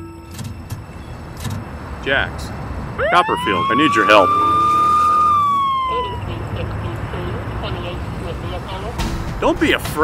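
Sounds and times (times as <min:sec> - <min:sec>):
police siren wail: 0:03.0 - 0:08.0.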